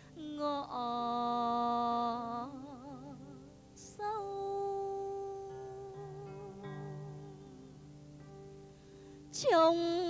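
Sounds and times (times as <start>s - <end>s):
quiet instrumental accompaniment: 0.0s - 10.0s
woman singing long note: 0.2s - 7.8s, 9.3s - 10.0s.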